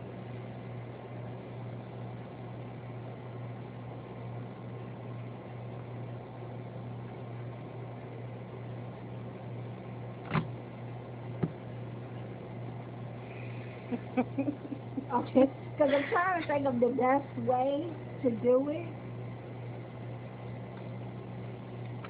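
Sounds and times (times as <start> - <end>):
electric fan humming: 0.0 - 22.0.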